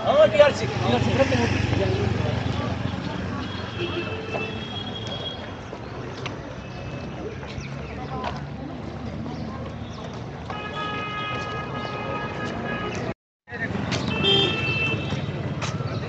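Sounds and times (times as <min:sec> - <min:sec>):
car horn honking: 0:10.5 - 0:13.1, 0:14.1 - 0:15.2.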